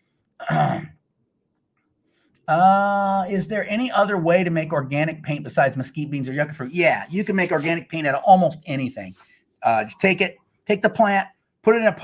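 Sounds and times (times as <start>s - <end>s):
man clearing his throat: 0.4s - 1.0s.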